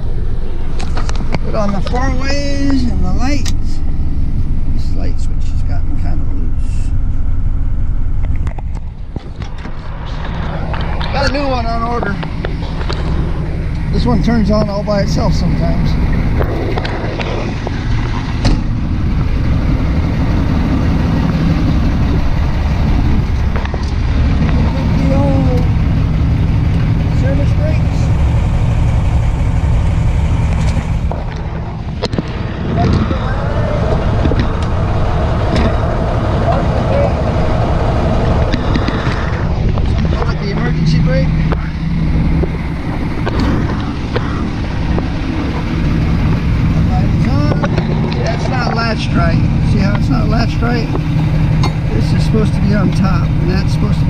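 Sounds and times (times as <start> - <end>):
diesel truck engine idling: 0.0 - 54.0.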